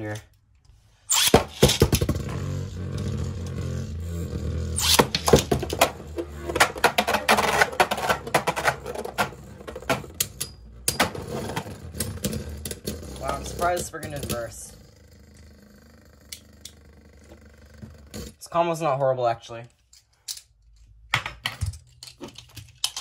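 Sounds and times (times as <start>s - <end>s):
spinning tops whirring: 1.1s - 14.7s
tops clacking together: 4.8s - 14.6s.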